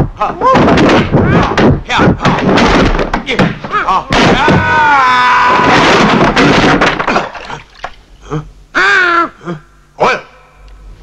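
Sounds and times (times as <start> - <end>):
man crying out: 8.3 - 9.7.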